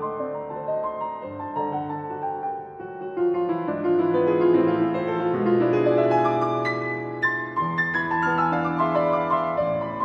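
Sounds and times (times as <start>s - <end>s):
solo classical piano: 0.0s - 10.0s.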